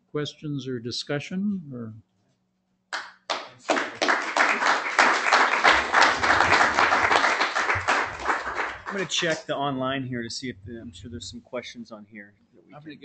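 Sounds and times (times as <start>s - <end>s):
audience applauding: 3.0s - 9.4s.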